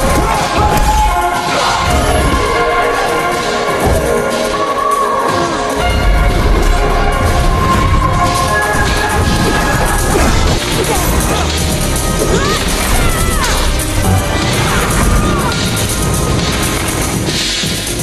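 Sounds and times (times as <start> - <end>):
film musical score: 0.0 - 18.0.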